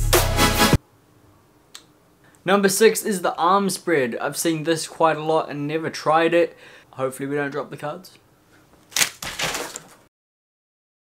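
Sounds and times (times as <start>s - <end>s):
playing cards snapping: 8.8s - 10.0s
playing cards rustling: 8.8s - 10.1s.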